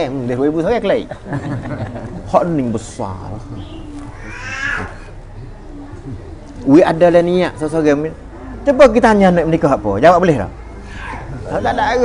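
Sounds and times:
high-pitched animal call: 0:03.6 - 0:05.2, 0:10.7 - 0:11.6.

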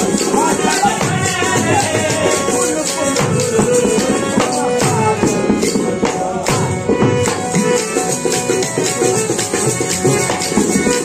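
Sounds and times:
man singing: 0:00.0 - 0:07.2
harmonium: 0:00.0 - 0:11.0
sharp percussive strikes: 0:00.0 - 0:11.0.

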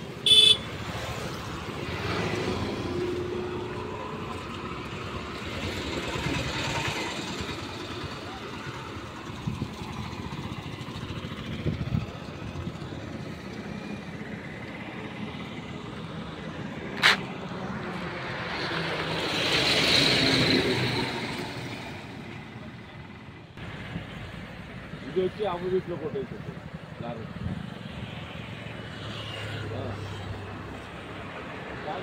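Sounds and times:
highway traffic: 0:00.0 - 0:32.0
people talking: 0:08.0 - 0:09.2, 0:25.1 - 0:27.4.

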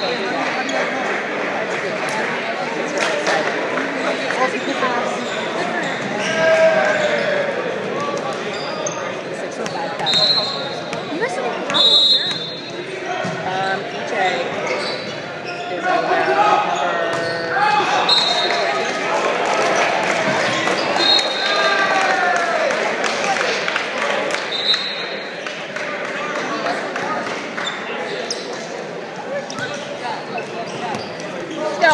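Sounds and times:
voices and chatter: 0:00.0 - 0:31.9
sneaker squeaks: 0:04.0 - 0:07.2, 0:08.1 - 0:13.4, 0:14.2 - 0:18.7, 0:24.5 - 0:25.2, 0:27.6 - 0:28.8, 0:29.4 - 0:31.9.

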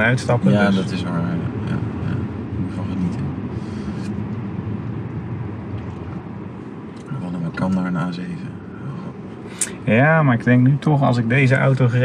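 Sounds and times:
car cabin road and engine rumble: 0:00.0 - 0:12.0.

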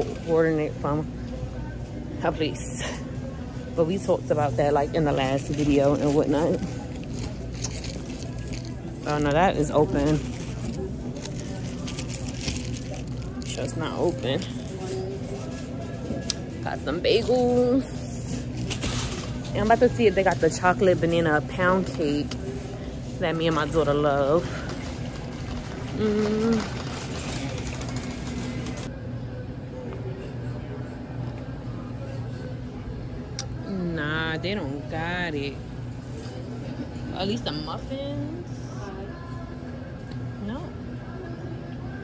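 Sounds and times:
faint voices: 0:00.0 - 0:42.0
supermarket background hum: 0:00.0 - 0:42.0.

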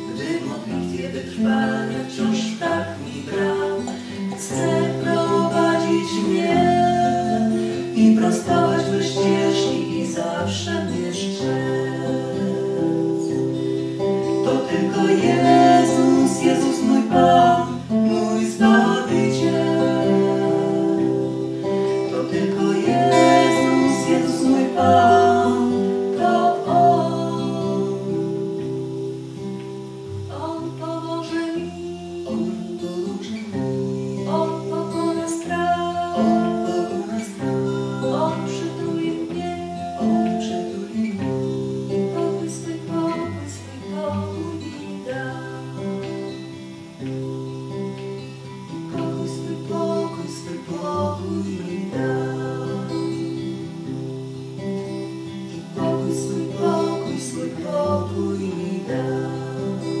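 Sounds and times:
woman singing: 0:00.0 - 0:28.9, 0:30.1 - 0:46.6, 0:48.9 - 0:54.0, 0:55.5 - 1:00.0
acoustic guitar strummed and picked: 0:00.0 - 1:00.0.

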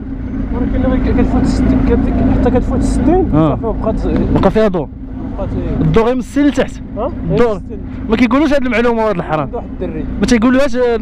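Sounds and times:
motorcycle engine idling: 0:00.0 - 0:11.0
man making hesitant ah sounds: 0:03.3 - 0:03.6.

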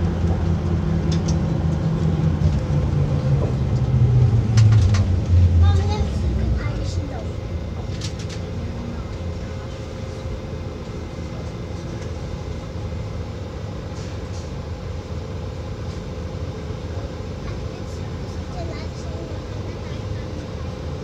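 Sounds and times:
constant hum: 0:00.0 - 0:21.0
low engine rumble: 0:00.0 - 0:21.0.

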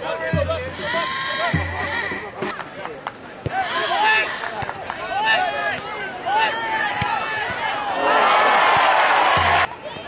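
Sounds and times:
people's voices calling: 0:00.0 - 0:08.4.

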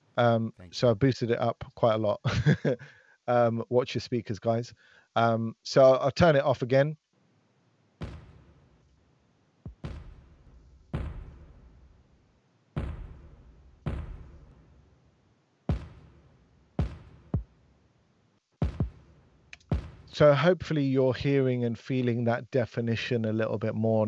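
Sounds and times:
kick drum hits: 0:08.0 - 0:08.6, 0:09.7 - 0:11.7, 0:12.8 - 0:14.6, 0:15.7 - 0:17.5, 0:18.6 - 0:20.2.

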